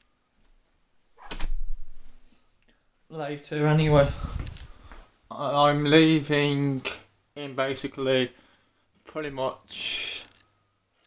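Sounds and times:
window creaking and rubbing: 3.8s - 4.9s.

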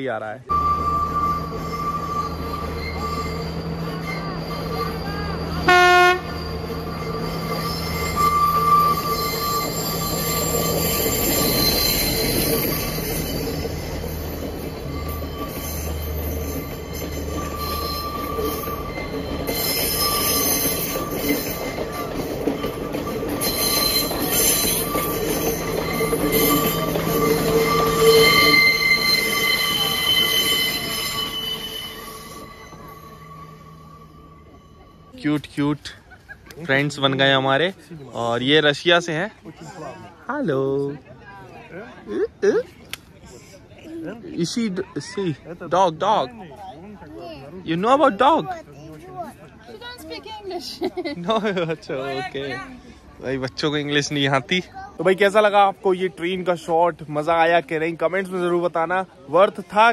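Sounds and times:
high wheel squeal: 0.4s - 37.4s
diesel train engine drone: 0.5s - 37.1s
train wheels running on rails: 0.5s - 38.0s
train horn toot: 5.4s - 6.6s.

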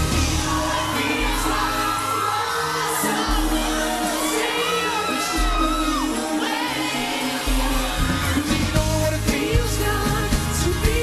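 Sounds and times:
crowd shouting and screaming: 0.0s - 11.0s
live pop song: 0.0s - 11.0s
low bass notes: 7.6s - 11.0s.

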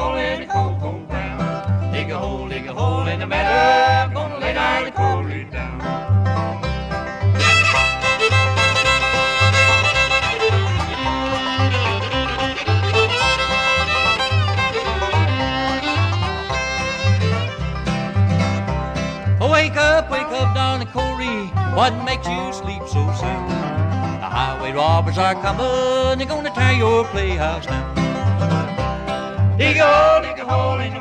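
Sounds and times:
banjo: 0.0s - 31.0s
fiddle: 0.0s - 31.0s
guitar: 0.0s - 31.0s
upright bass: 0.0s - 31.0s.

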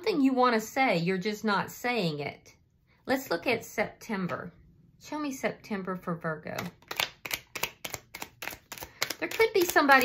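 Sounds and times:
cards being shuffled: 6.6s - 10.0s.

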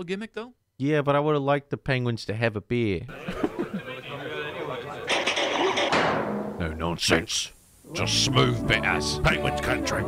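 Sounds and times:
speech: 0.0s - 3.1s, 6.6s - 10.0s.

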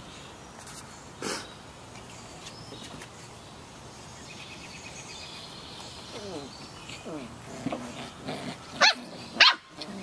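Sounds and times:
puppy rough vocal sound: 6.2s - 10.0s.

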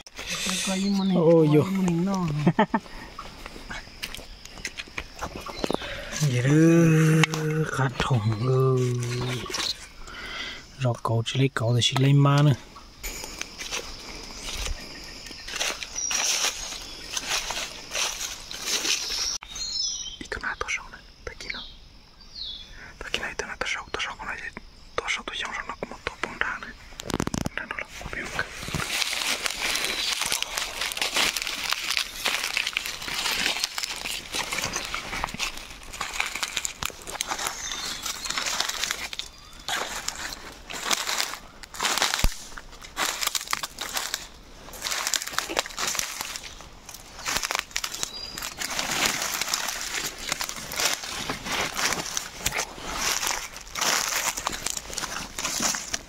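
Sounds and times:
dry leaf litter crunching: 5.4s - 10.2s, 13.1s - 19.7s, 28.4s - 56.0s.

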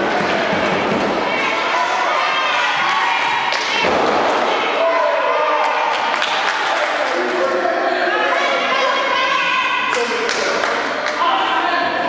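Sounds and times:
crowd shouting: 0.0s - 6.7s.

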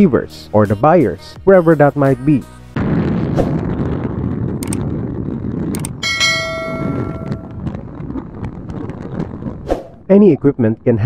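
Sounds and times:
bright bell ding: 6.0s - 7.6s.

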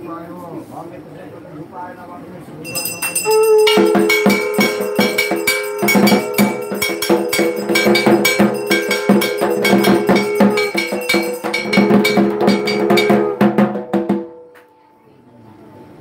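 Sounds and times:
held tone: 2.6s - 15.0s
drums: 2.7s - 14.5s
bell or gong struck fast: 2.7s - 14.6s.

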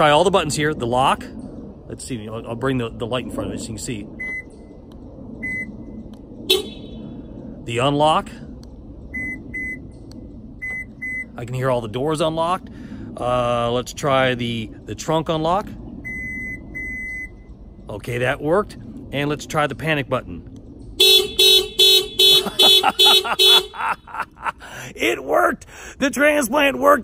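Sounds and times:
car high beeps: 4.2s - 4.5s, 5.4s - 5.7s, 9.2s - 9.8s, 10.6s - 11.4s, 16.0s - 17.5s
car lock beeps: 4.2s - 4.5s.

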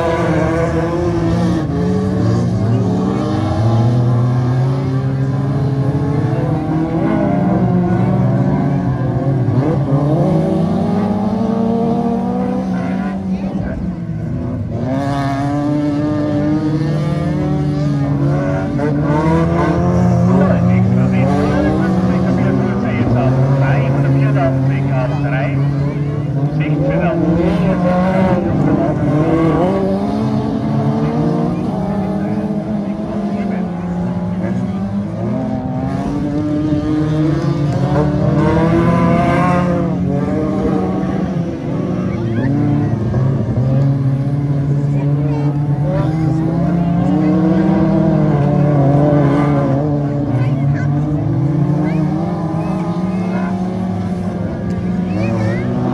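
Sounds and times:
racing car engines: 0.0s - 55.9s.

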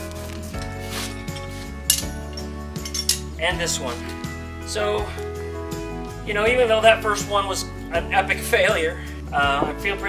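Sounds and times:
background music held tones: 0.0s - 10.0s
metallic clink of steel: 1.9s - 3.3s.

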